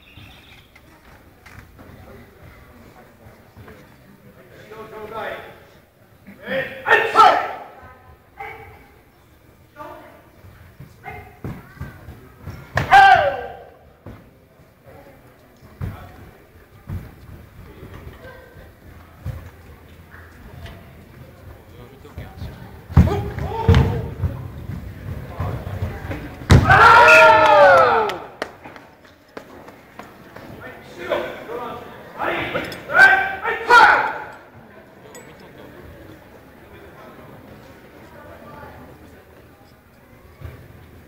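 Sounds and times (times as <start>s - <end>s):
person shouting karate kiai: 6.6s - 7.7s, 12.8s - 13.7s, 32.2s - 34.3s.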